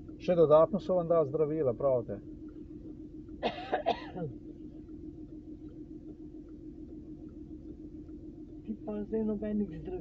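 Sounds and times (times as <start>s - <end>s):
steady low hum: 0.0s - 10.0s
person clearing throat: 3.4s - 4.4s.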